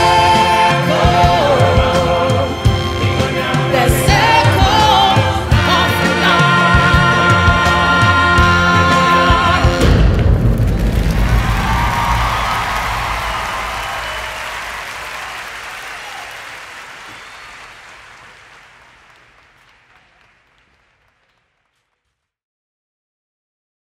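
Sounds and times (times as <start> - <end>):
band and singers holding chord: 0.0 - 19.2
heavy drum hit: 8.4 - 15.4
audience applause: 10.6 - 21.9.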